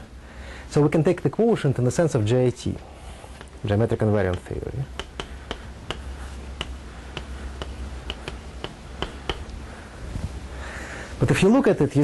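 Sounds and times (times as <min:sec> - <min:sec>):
low room hum: 0:00.0 - 0:12.0
chalk tapping on a blackboard: 0:03.3 - 0:09.6.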